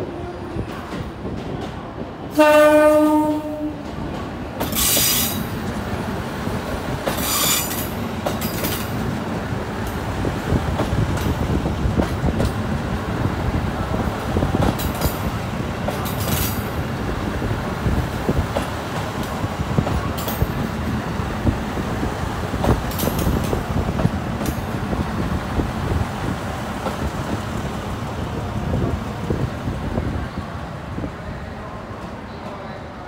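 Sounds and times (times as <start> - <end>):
diesel train rumbling: 0.0 - 33.0
high wheel squeals: 7.2 - 7.9.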